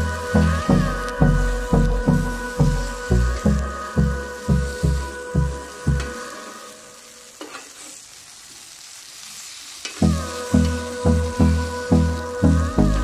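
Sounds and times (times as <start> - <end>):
music with steady beat: 0.0 - 6.3, 10.0 - 13.0
meat sizzling on grill pan: 0.0 - 13.0.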